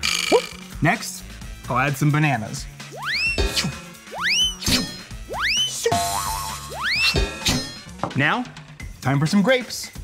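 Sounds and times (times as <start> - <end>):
cartoon boing effect: 0.0 - 0.6
light children's music: 0.3 - 10.0.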